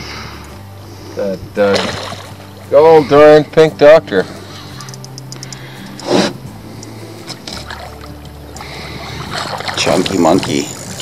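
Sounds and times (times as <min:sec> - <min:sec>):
outboard motor idling: 0:04.4 - 0:11.0.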